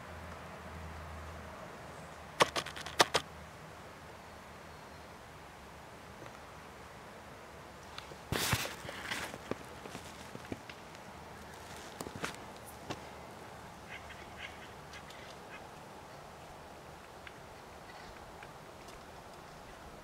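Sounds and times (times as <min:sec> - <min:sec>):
birds pecking taps: 0:02.4 - 0:03.2
woodpeckers harsh calls: 0:13.8 - 0:15.7.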